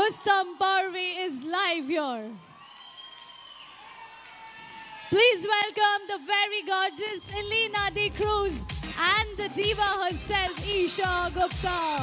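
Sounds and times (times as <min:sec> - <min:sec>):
faint crowd cheering: 0:00.0 - 0:12.0.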